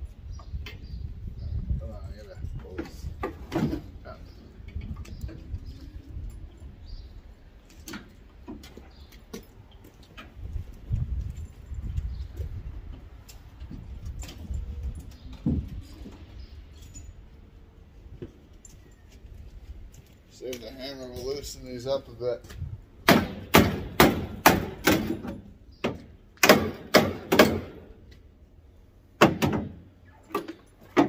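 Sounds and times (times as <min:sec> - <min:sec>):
metal knocks on sheet metal: 0:23.0 - 0:27.8, 0:29.2 - 0:29.8.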